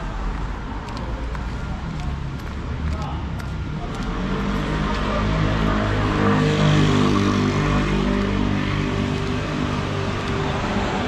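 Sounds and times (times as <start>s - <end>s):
car approaching on road: 0.0s - 11.0s
low traffic hum: 0.0s - 11.0s.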